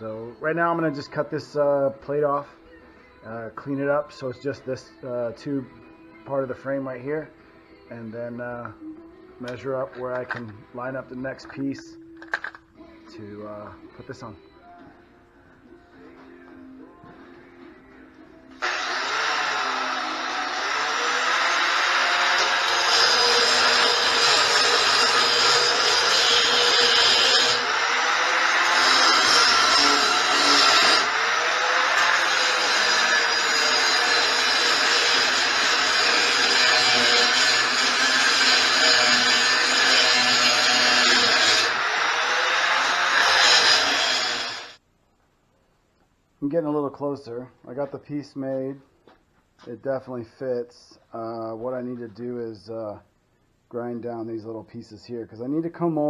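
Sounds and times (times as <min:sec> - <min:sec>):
angle grinder cutting steel: 0:18.6 - 0:44.8.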